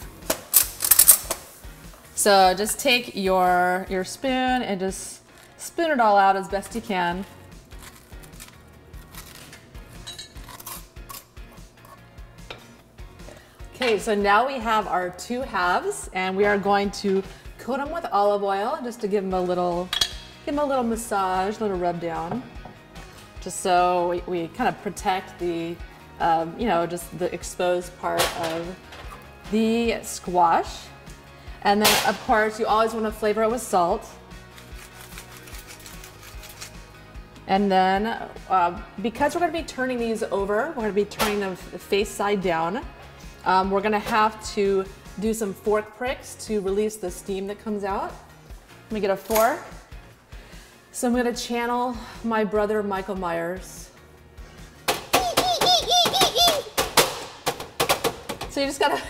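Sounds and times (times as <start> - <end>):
soft background music: 0.0 - 59.0
metal spoon scraping squash: 7.7 - 12.1, 34.5 - 36.8.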